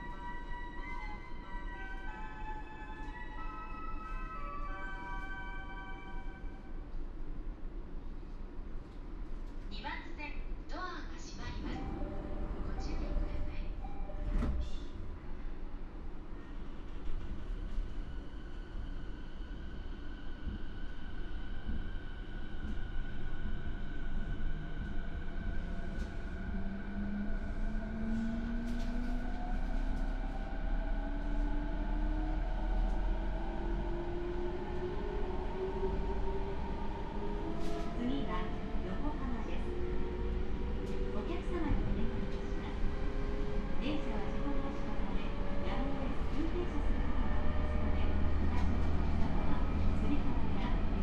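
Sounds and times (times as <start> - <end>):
train wheels rumbling on rails: 20.4 - 51.0.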